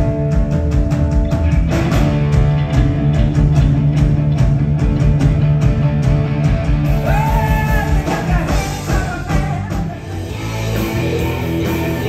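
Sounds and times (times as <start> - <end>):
bass guitar: 0.0 - 12.0
electric guitar: 0.0 - 12.0
steady drum beat: 0.0 - 12.0.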